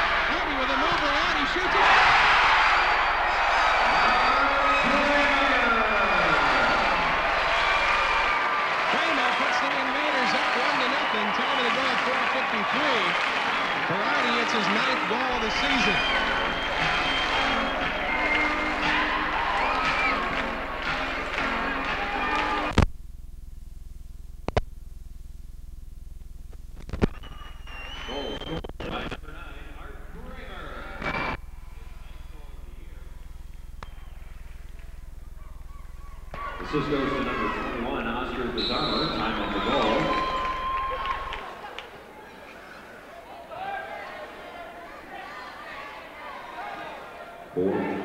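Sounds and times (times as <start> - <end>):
indistinct voices: 0.0 - 22.7, 27.7 - 48.0
steady low hum: 15.4 - 41.4.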